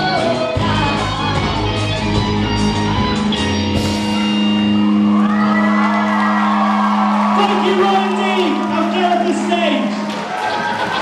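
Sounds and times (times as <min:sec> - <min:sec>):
audience cheering and whooping: 0:04.2 - 0:11.0.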